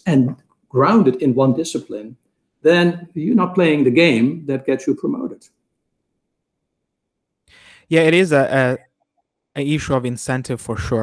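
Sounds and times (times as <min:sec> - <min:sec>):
man speaking: 0:00.0 - 0:05.5, 0:07.7 - 0:08.8, 0:09.6 - 0:11.0
faint in-breath: 0:07.5 - 0:07.9.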